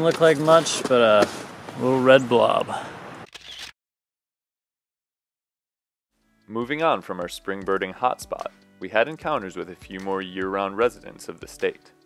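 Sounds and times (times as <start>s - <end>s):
faint outdoor background noise: 0.0s - 3.3s.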